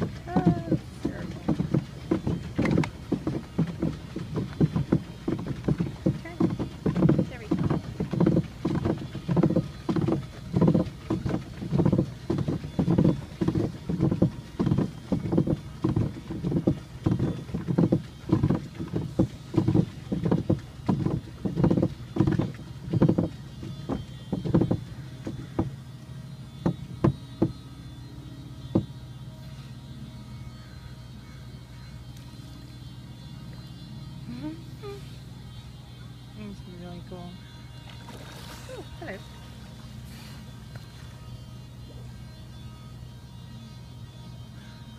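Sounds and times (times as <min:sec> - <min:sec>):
paddle strokes in water: 0:00.0 - 0:27.8, 0:28.6 - 0:29.9, 0:37.7 - 0:42.1.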